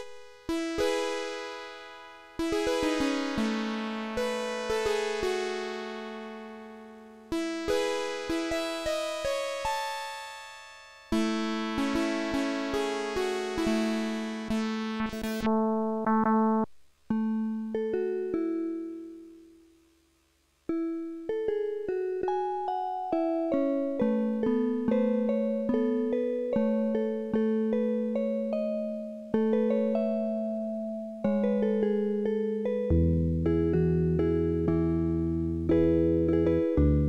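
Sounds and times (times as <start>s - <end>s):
circuit-bent keyboard notes: 0.0s - 20.0s, 20.6s - 37.0s.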